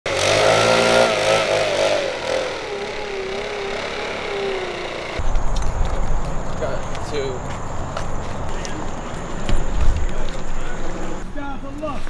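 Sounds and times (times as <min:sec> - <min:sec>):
vehicle engine running: 0:00.1 - 0:11.2.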